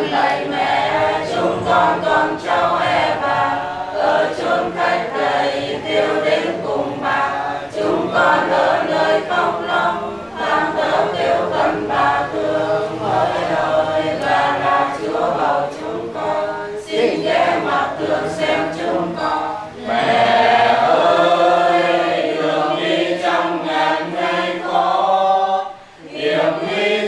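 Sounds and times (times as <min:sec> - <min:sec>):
group singing a hymn: 0:00.0 - 0:27.0.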